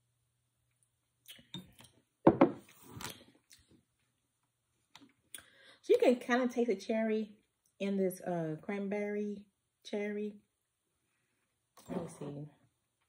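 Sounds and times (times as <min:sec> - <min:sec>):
glass set down on table: 0:02.3 - 0:02.6.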